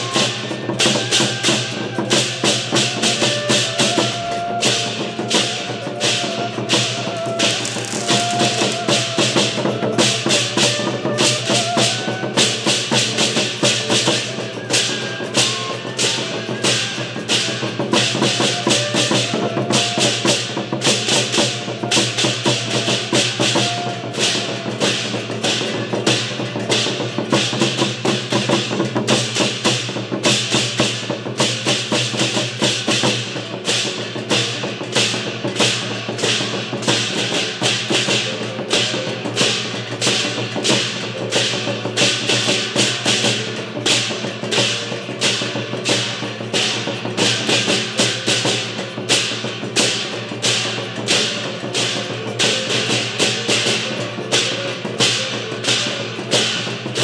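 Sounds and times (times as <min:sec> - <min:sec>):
hand cymbals clashing: 0:00.0 - 0:57.0.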